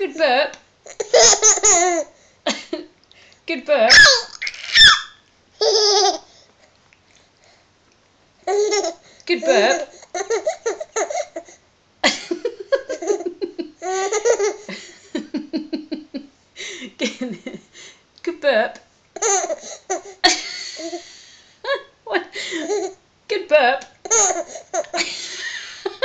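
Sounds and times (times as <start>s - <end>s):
baby laughing: 0.9s - 2.1s, 3.9s - 6.3s, 8.5s - 11.5s, 12.8s - 14.7s, 19.2s - 21.0s, 24.0s - 25.1s.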